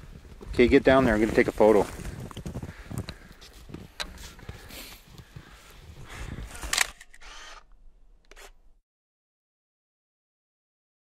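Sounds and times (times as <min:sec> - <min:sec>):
clicks and rustles of gear: 0:01.3 - 0:05.5, 0:06.3 - 0:07.6.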